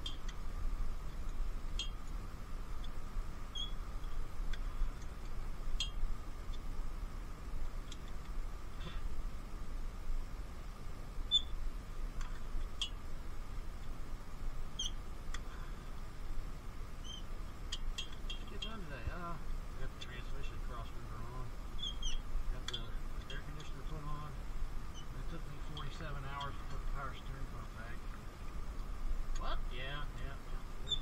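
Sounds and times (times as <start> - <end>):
faint steady hum: 0.0 - 31.0.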